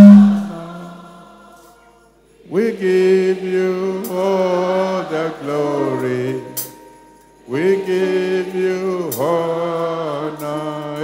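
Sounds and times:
man singing into a microphone: 0:02.5 - 0:06.6, 0:07.5 - 0:11.0.

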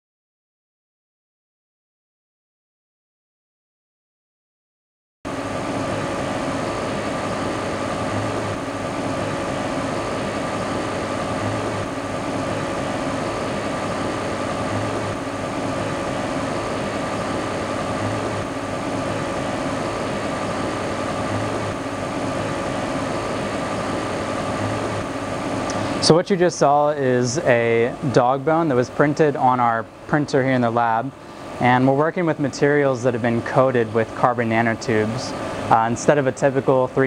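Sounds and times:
faint high whine: 0:05.3 - 0:37.0.

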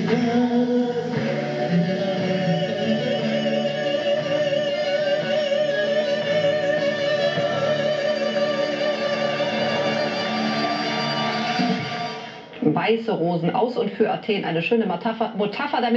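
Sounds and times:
band playing guitar bass drums: 0:00.0 - 0:03.5
woman singing with vibrato: 0:00.0 - 0:10.5.

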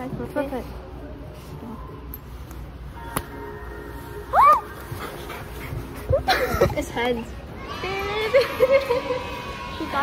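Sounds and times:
girls squealing and shrieking: 0:07.5 - 0:10.0.

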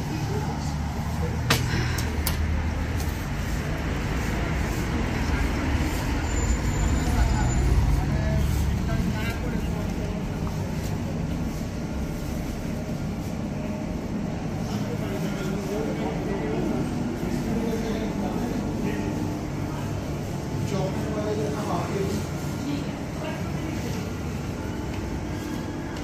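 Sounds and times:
road traffic rumbling: 0:00.0 - 0:26.0.

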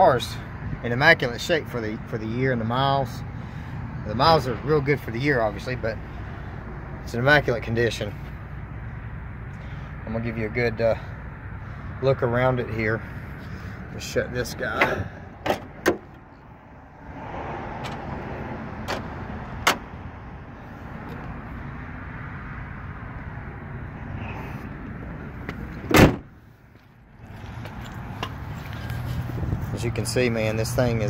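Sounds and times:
car hood slammed shut: 0:18.9 - 0:19.9, 0:25.8 - 0:26.3.

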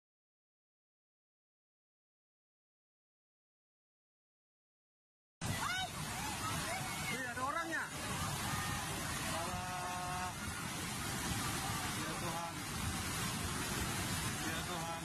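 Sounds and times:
people's voices: 0:05.4 - 0:12.8
river rushing: 0:05.4 - 0:15.0.

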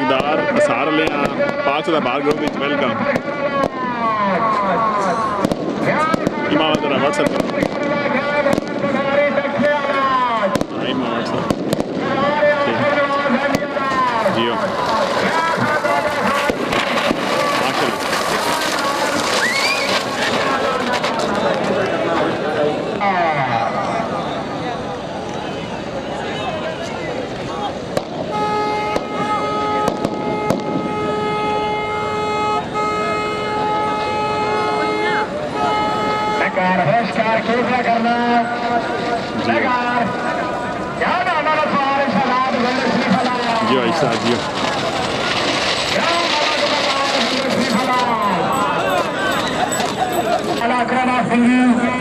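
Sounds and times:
sharp cracks: 0:05.4 - 0:22.0, 0:42.0 - 0:48.2
large crowd shouting: 0:12.0 - 0:31.5, 0:37.6 - 0:52.0
horn blasts: 0:28.2 - 0:37.8.

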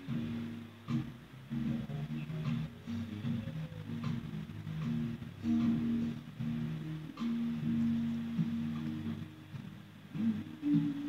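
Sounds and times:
band music with guitar chords: 0:00.0 - 0:11.0.

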